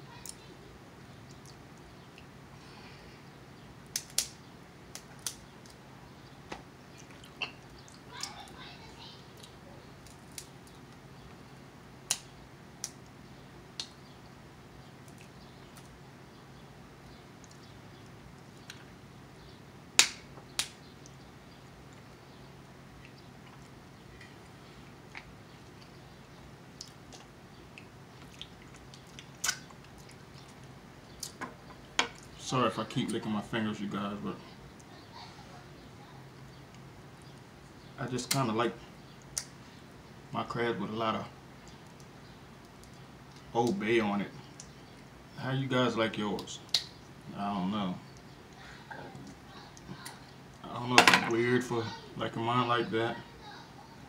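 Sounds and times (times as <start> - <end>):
soft eating sounds: 0.0 - 19.8, 20.4 - 45.4, 46.0 - 52.2
steady low hum: 0.0 - 54.0
crab shells cracking: 3.9 - 5.8, 9.4 - 10.8, 26.8 - 32.3.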